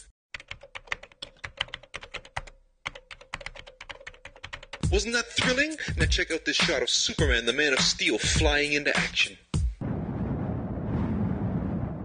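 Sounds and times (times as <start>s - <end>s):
laptop keyboard typing: 0.3s - 4.9s.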